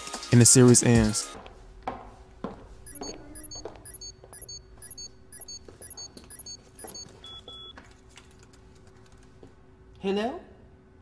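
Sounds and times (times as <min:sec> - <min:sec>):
footsteps on hard floor: 0:01.4 - 0:04.9, 0:05.6 - 0:07.9
steady low hum: 0:01.5 - 0:07.7
short low beeps: 0:02.9 - 0:07.7
telephone ringing beeps: 0:02.9 - 0:07.8.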